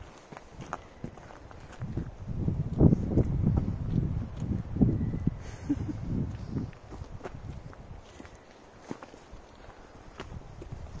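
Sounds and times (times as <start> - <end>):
footsteps on dirt trail: 0.0 - 5.1, 6.1 - 11.0.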